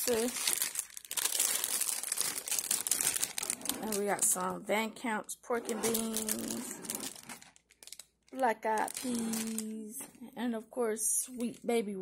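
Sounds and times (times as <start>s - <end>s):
plastic packaging crinkling: 0.0s - 4.6s, 5.8s - 10.1s.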